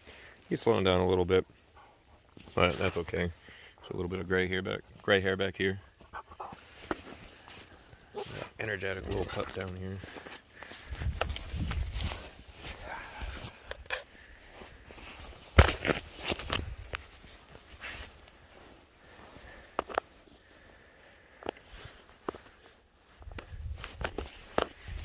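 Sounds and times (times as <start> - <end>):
footsteps outdoors: 0.0 - 25.0.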